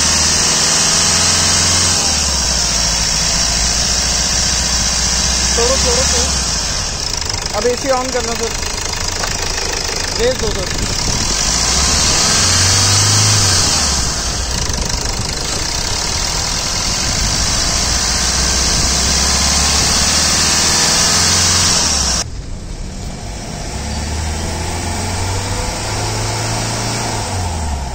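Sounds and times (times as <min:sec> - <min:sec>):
car engine idling: 0:00.0 - 0:27.9.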